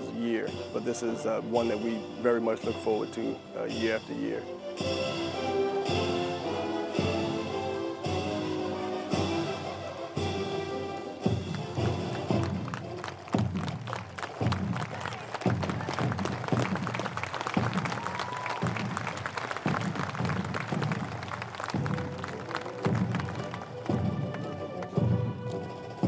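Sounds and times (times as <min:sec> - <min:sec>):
marching footsteps on pavement: 0:09.1 - 0:26.0.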